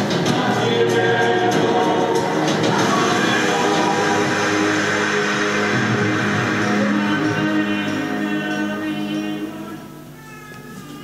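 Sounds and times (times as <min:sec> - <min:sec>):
voices singing in chorus: 0:00.0 - 0:10.0
acoustic guitar: 0:00.0 - 0:10.1.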